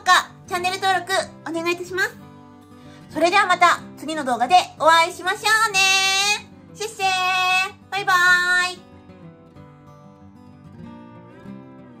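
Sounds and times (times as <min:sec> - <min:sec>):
faint background music: 0:00.0 - 0:12.0
woman calling out cheerfully: 0:04.8 - 0:08.8.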